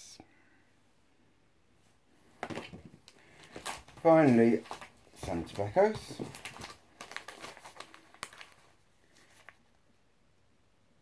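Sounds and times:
packaging rustling and crinkling: 0:02.4 - 0:09.8.

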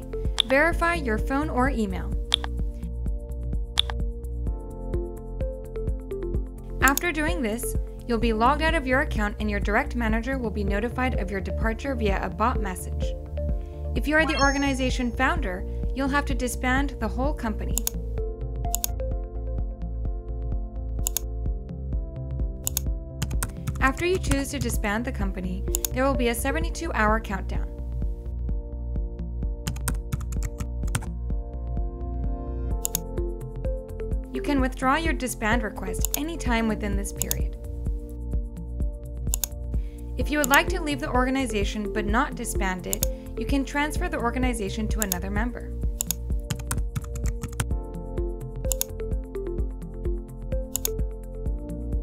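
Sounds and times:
background music: 0:00.0 - 0:52.0
keyboard key clicks: 0:02.3 - 0:02.5, 0:03.8 - 0:04.0
keyboard keystroke clicks: 0:02.3 - 0:02.6, 0:03.8 - 0:04.0, 0:22.6 - 0:23.8, 0:39.3 - 0:39.6, 0:45.0 - 0:45.2, 0:46.0 - 0:47.7, 0:48.7 - 0:49.0
person speaking: 0:14.0 - 0:15.2.

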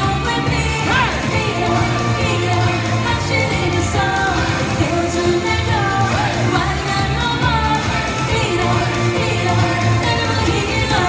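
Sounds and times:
amplified backing music: 0:00.0 - 0:11.0
woman singing a pop song: 0:00.0 - 0:11.0.

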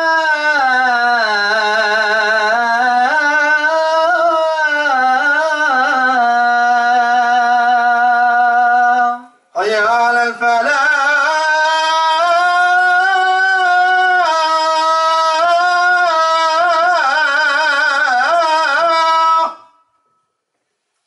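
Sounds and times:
man chanting through microphone: 0:00.0 - 0:19.8.

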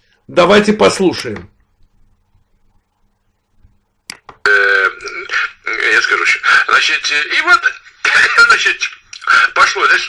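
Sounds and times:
man speaking: 0:00.3 - 0:01.6, 0:04.4 - 0:10.0.

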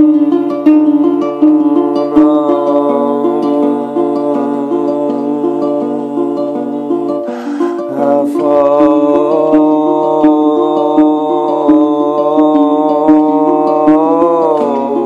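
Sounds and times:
guitar picked in a pattern: 0:00.0 - 0:15.0
man singing wordless notes: 0:01.4 - 0:15.0.

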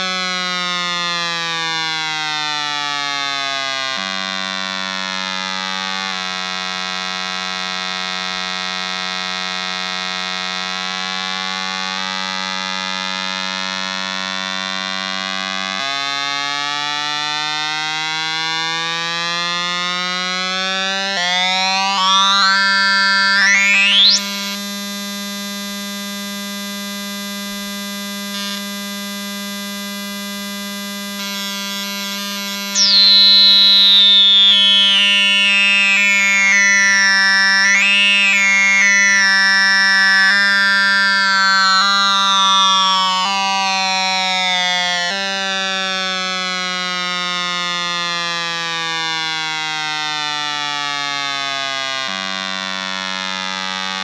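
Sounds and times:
sliding square-wave tone: 0:19.1 - 0:24.7, 0:31.0 - 0:45.4.

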